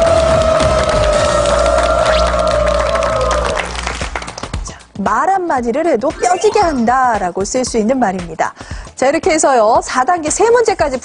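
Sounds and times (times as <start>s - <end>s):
audience applause: 0.0s - 4.6s
held electronic tone: 6.2s - 6.9s.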